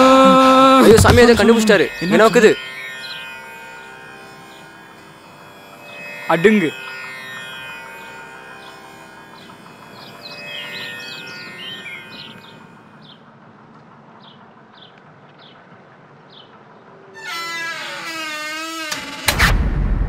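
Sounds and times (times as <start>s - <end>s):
wavering note with vibrato: 0.0s - 13.1s.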